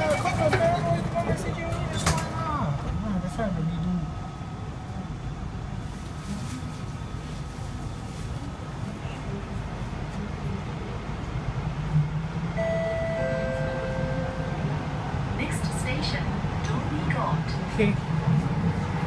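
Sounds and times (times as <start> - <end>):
metro train rumble: 0.0 - 19.0.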